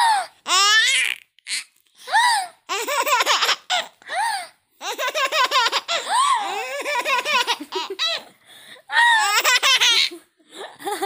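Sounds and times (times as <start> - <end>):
baby squealing: 0.5 - 1.7
baby laughing: 2.7 - 4.0, 4.8 - 8.3, 9.2 - 10.3.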